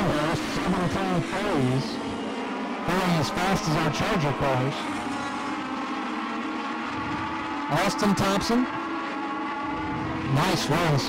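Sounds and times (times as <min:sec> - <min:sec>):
race car engines droning: 0:00.0 - 0:11.0.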